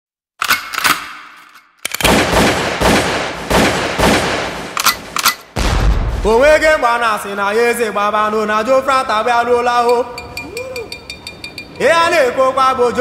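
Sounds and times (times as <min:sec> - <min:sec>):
sharp bangs: 0:02.0 - 0:07.0
deep low boom: 0:05.6 - 0:06.8.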